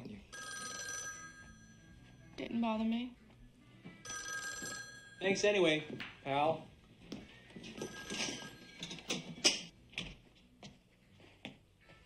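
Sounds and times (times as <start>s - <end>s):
telephone ringing: 0.3s - 2.3s, 4.0s - 5.9s, 7.5s - 9.4s.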